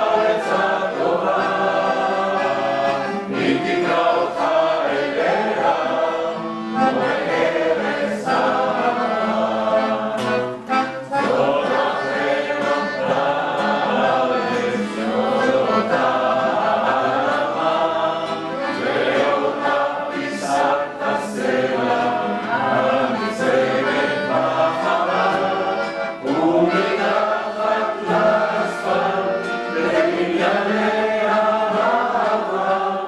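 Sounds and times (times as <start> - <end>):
accordion: 0.0 - 33.0
classical guitar: 0.0 - 33.0
group singing together: 0.0 - 33.0.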